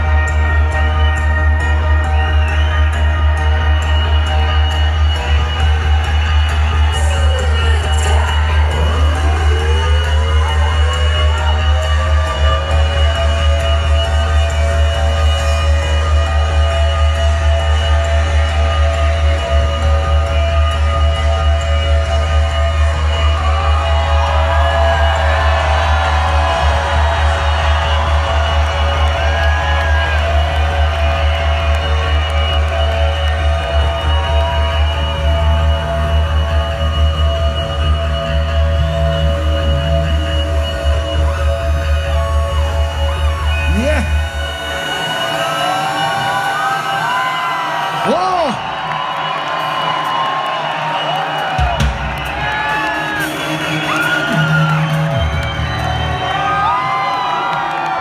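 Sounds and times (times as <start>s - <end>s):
crowd cheering and whooping: 0.0s - 58.0s
electronic music through pa: 0.0s - 58.0s.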